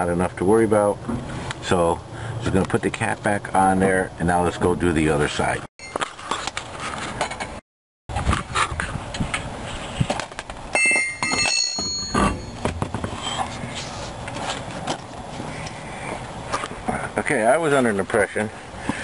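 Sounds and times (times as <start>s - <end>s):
metallic ring: 10.8s - 12.7s.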